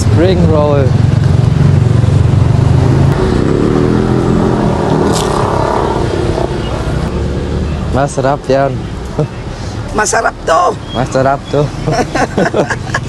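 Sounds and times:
vehicle engine passing: 0.0s - 9.8s.

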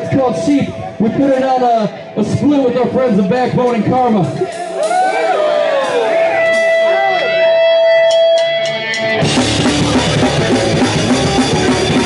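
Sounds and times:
scattered voices: 0.0s - 6.7s
punk band playing: 0.0s - 12.0s.

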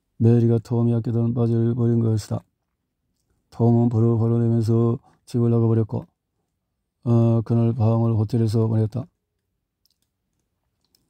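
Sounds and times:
man's voice: 0.2s - 2.5s, 3.5s - 6.1s, 7.0s - 9.2s
faint clicks: 9.4s - 11.0s.

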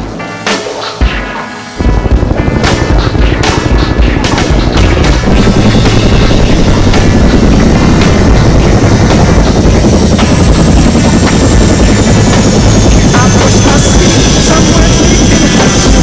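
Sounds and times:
high whine: 0.0s - 16.0s
helicopter rotor and engine: 1.8s - 16.0s.

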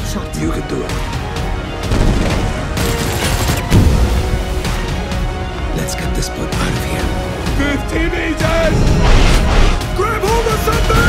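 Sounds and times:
dramatic trailer music: 0.0s - 11.0s.

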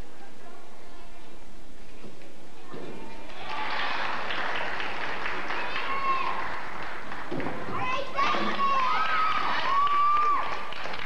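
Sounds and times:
scattered clapping: 3.2s - 11.0s.

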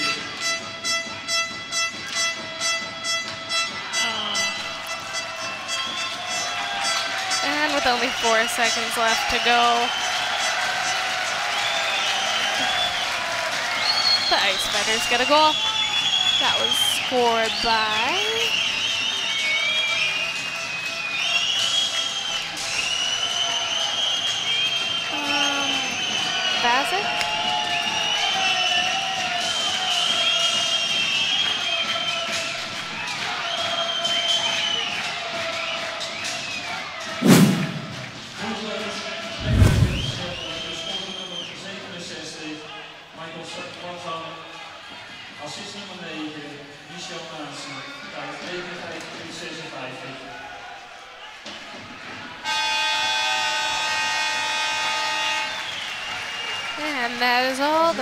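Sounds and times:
music over public address: 0.0s - 9.6s
crowd voices: 2.0s - 11.2s, 13.8s - 15.6s, 16.2s - 18.6s, 25.0s - 27.3s, 39.3s - 40.9s, 56.7s - 58.0s
heavy thuds: 39.4s - 40.6s.

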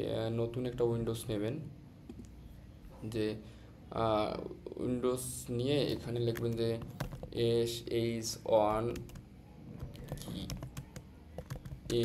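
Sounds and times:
computer keyboard typing: 5.9s - 7.4s, 8.7s - 12.0s.

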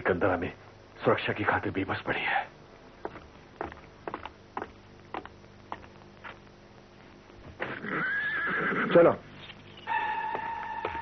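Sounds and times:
horse whinnying: 7.6s - 9.2s.

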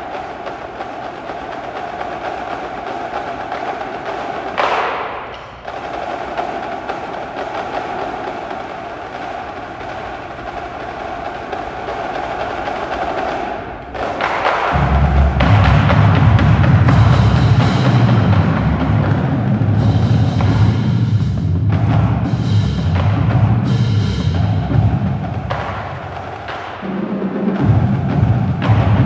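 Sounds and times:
marching drumline playing: 0.0s - 29.0s
loud low bass drums: 14.8s - 25.4s, 27.6s - 29.0s.

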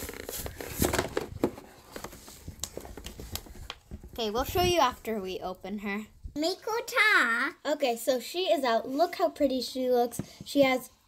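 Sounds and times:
plastic packaging crinkling: 0.0s - 3.9s.

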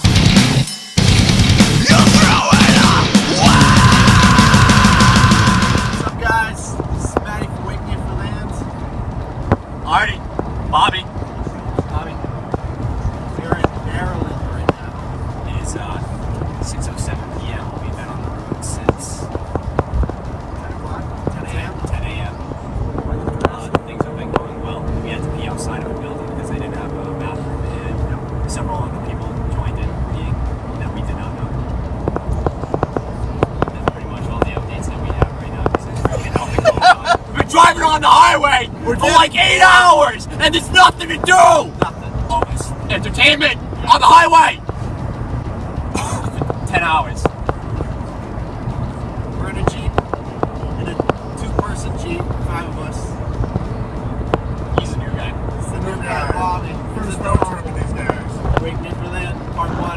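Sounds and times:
road noise inside a van: 0.0s - 59.9s
sharp clicks and knocks: 31.9s - 37.3s
passengers talking quietly: 33.6s - 40.6s.

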